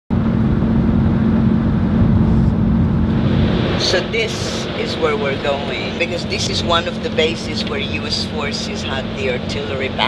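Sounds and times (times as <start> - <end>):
car interior rumble: 0.1 - 10.0.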